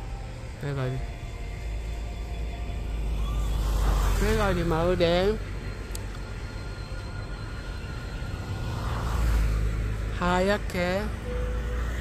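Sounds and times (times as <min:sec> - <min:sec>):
road vehicle passing: 0:00.0 - 0:12.0.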